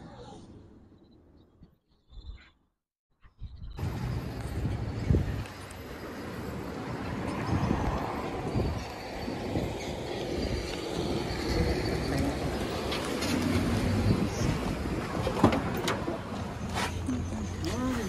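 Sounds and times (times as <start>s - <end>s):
wind on microphone: 3.4s - 15.7s
road noise: 3.7s - 18.0s.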